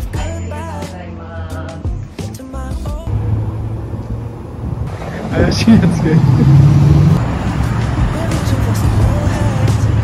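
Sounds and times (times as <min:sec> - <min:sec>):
background music: 0:00.0 - 0:03.9, 0:07.0 - 0:10.0
low traffic rumble: 0:03.1 - 0:10.0.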